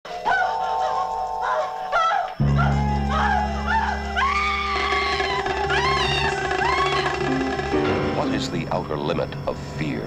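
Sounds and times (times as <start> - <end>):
eerie horror film score: 0.3 - 10.0.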